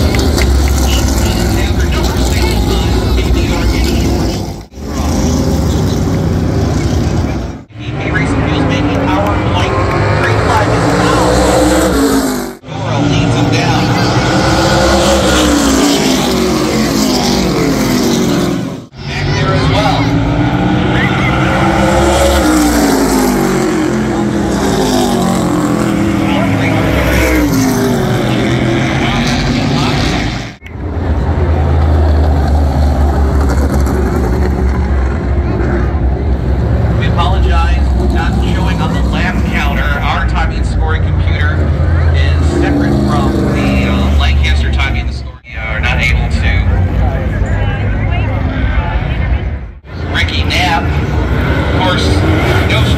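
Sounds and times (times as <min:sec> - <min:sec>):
heavy low rumble: 0:00.0 - 0:15.0
race car engines: 0:00.0 - 0:52.9.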